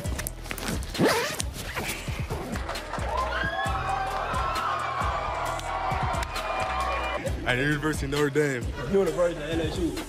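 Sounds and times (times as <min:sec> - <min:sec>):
background music: 0:00.0 - 0:10.0
jacket zipper pulled down: 0:00.4 - 0:02.6.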